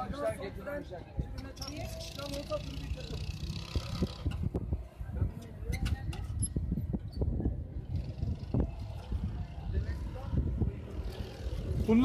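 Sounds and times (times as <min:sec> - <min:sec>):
go-kart engine and road rumble: 0:00.0 - 0:12.0.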